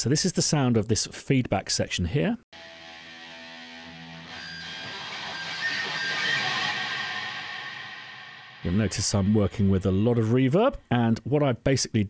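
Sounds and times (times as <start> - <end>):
electric guitar feedback with tremolo: 2.6 - 10.2.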